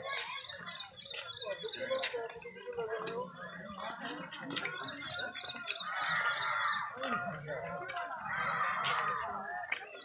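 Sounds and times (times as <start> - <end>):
murmur of voices: 0.0 - 10.0
small bird chirping: 0.1 - 2.5.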